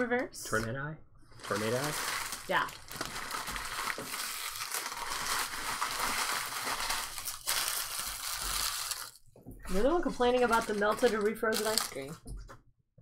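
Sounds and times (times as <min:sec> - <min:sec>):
foil wrappers crinkling: 0:01.4 - 0:09.2, 0:10.0 - 0:12.2.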